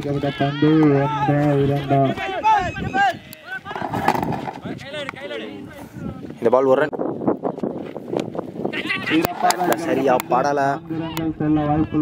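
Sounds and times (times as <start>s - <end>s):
people calling out: 0.0s - 6.0s, 8.7s - 10.2s
commentator talking: 8.8s - 12.0s.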